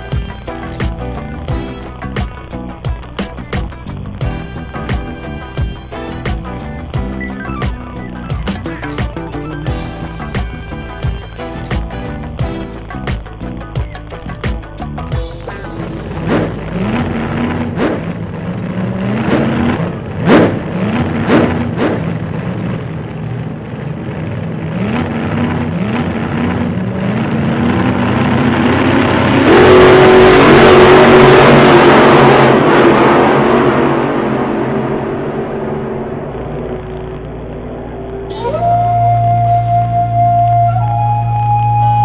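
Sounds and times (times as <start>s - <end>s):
vehicle engine accelerating: 0.0s - 42.0s
loud rushing noise: 15.1s - 24.0s, 25.4s - 40.2s.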